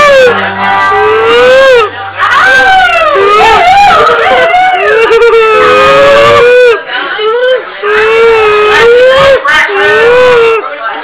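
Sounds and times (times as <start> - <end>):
live band playing: 0.0 - 4.3
high wailing voice singing: 0.0 - 10.8.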